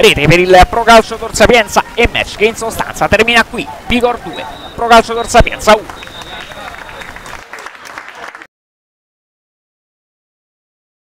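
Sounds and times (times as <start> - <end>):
crowd voices: 0.0 - 8.5
crowd clapping: 4.0 - 8.5.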